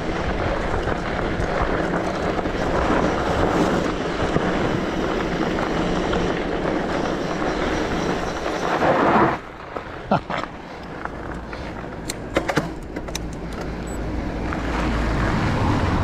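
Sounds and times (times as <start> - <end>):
bike tyres rolling over gravel: 0.0 - 16.0.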